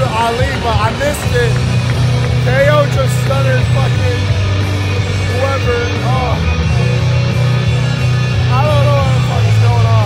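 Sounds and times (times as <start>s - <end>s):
loud music with deep bass: 0.0s - 10.0s.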